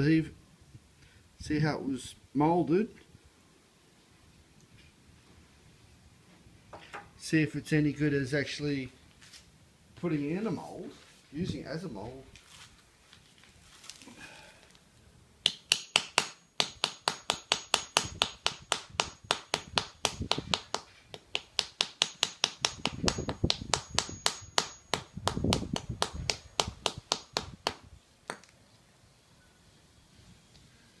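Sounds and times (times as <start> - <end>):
hammer tapping plaster mould: 15.4 - 28.5
heavier hammer thuds: 15.5 - 28.4.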